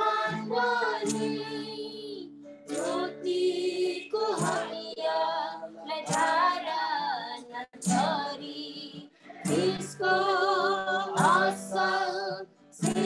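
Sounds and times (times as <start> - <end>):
woman singing: 0.0 - 13.0.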